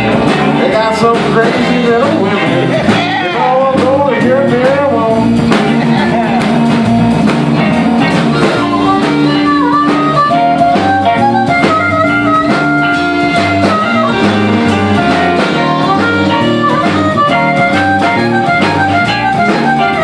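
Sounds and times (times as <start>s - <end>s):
blues band playing: 0.0s - 20.0s
harmonica: 0.0s - 20.0s.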